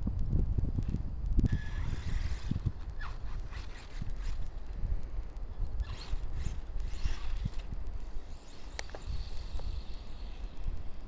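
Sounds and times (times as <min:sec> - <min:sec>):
wind rumbling on microphone: 0:00.0 - 0:11.0
electric motor whine: 0:01.5 - 0:04.5, 0:05.8 - 0:10.9.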